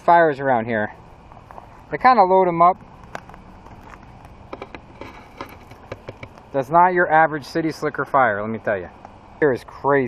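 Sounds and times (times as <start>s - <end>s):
low background noise: 0.0s - 10.0s
campfire crackling and popping: 2.8s - 6.6s.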